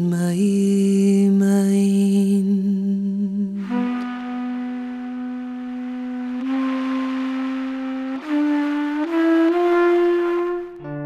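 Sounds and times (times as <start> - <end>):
wind instrument playing slow folk air: 3.4 - 11.0.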